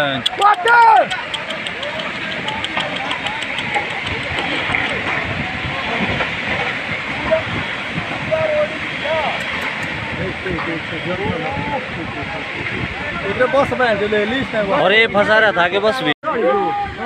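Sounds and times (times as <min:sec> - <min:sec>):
distant shouts of onlookers: 0:00.2 - 0:06.2, 0:16.3 - 0:17.0.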